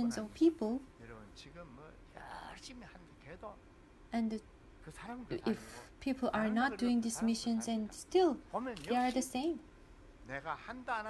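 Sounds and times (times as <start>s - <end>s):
man speaking softly: 1.0s - 3.6s.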